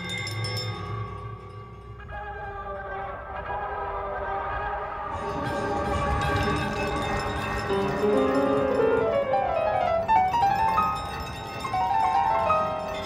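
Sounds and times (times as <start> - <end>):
bell-like electronic tones: 5.1 - 13.0.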